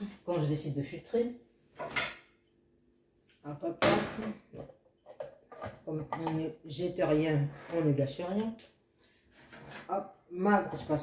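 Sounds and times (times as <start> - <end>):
kitchenware clatter: 1.8 - 2.4, 3.8 - 6.6.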